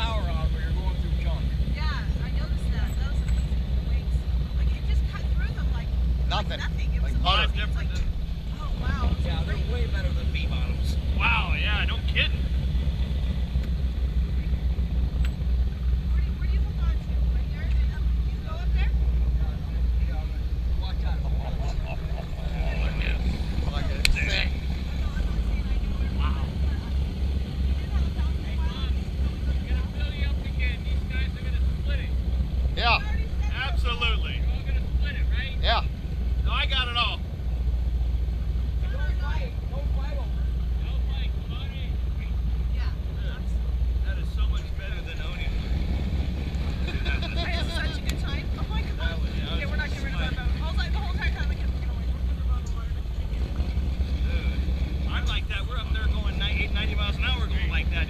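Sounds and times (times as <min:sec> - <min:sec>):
boat engines idling: 0:00.0 - 0:58.0
voices: 0:00.0 - 0:58.0.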